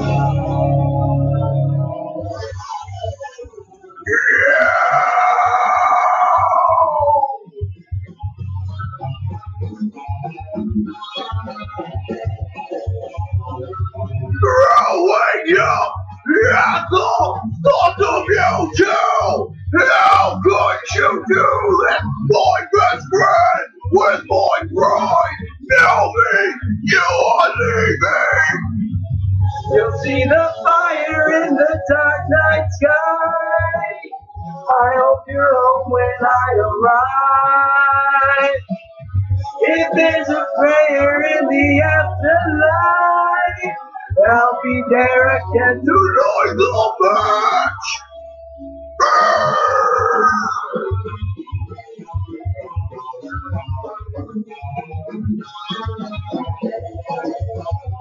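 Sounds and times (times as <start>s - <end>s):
rock backing track: 0.0s - 2.5s, 49.0s - 58.0s
man singing loudly: 4.1s - 7.4s, 14.4s - 28.7s, 29.7s - 38.7s, 39.6s - 48.0s.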